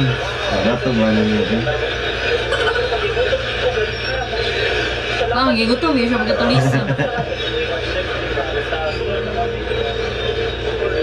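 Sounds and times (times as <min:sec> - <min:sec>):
steady low hum: 0:00.0 - 0:11.0
person speaking: 0:06.1 - 0:07.2.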